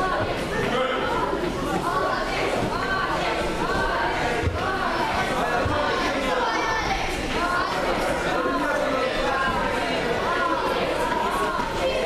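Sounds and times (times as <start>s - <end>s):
chatter of many voices: 0.0s - 12.0s.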